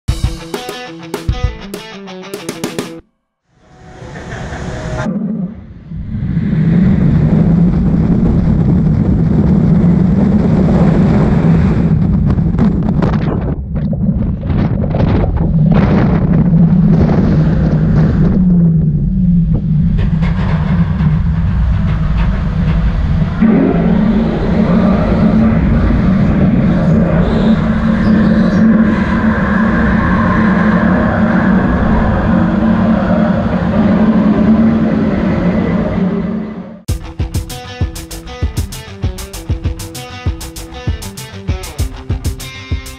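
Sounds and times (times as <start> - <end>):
rushing air: 3.6 - 13.0, 13.6 - 38.4
roller coaster rumbling on track: 3.7 - 37.4.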